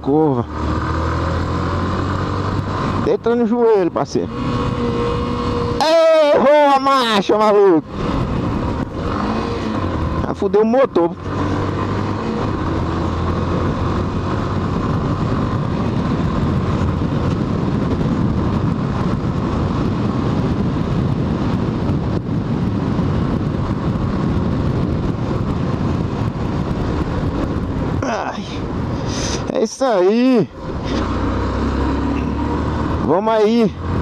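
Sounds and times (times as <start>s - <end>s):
motorcycle engine running: 0.0s - 34.0s
wind on microphone: 0.2s - 34.0s.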